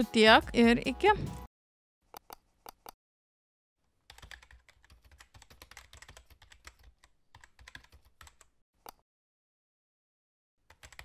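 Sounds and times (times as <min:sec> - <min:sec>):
computer keyboard typing: 0:04.1 - 0:09.0, 0:10.7 - 0:11.0.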